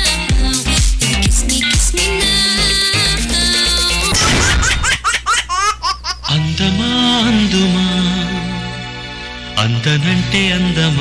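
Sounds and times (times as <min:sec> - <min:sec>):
dance music: 0:00.0 - 0:04.9
high-pitched laughter: 0:04.0 - 0:06.4.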